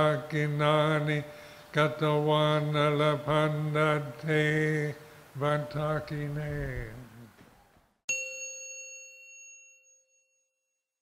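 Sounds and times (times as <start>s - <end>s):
monk chanting: 1.8s - 7.4s
bright bell-like chime: 8.1s - 11.0s.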